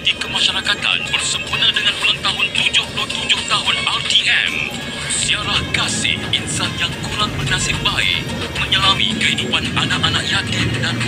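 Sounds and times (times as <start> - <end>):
bus engine and road noise: 0.0 - 11.0
radio music: 0.0 - 11.0
radio voice: 0.0 - 11.0.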